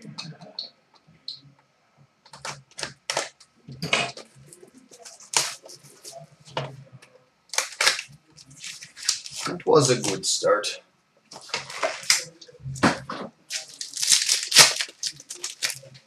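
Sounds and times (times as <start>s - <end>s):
knife slitting card pack: 13.5s - 15.8s.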